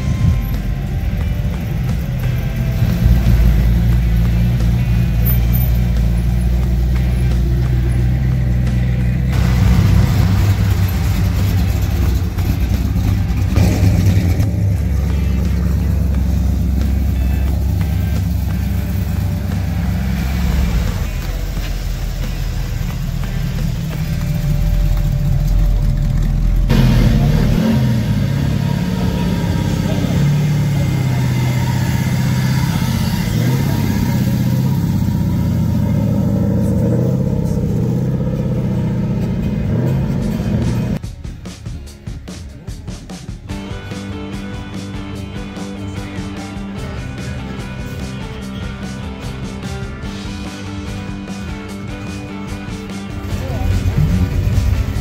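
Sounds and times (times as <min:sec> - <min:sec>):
cars driving slowly past: 0:00.0 - 0:41.0, 0:44.8 - 0:55.0.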